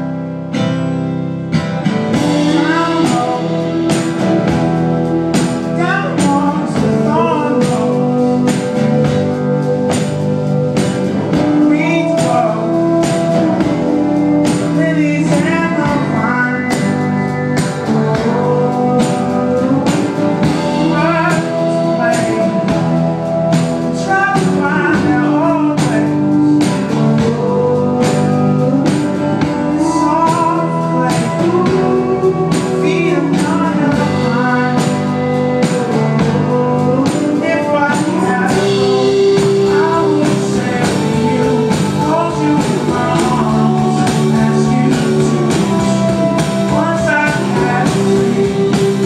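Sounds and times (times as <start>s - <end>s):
keyboard: 0.0s - 49.0s
live band playing instrumental: 0.0s - 49.0s
strummed acoustic guitar: 0.0s - 49.0s
voices singing wordless line: 2.1s - 49.0s.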